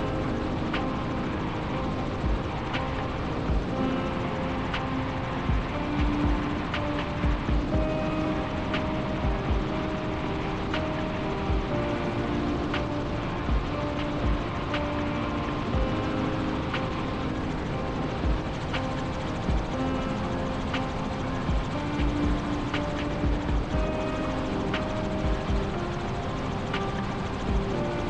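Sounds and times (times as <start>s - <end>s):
background music with low beats: 0.0s - 28.0s
helicopter in flight: 0.0s - 28.0s.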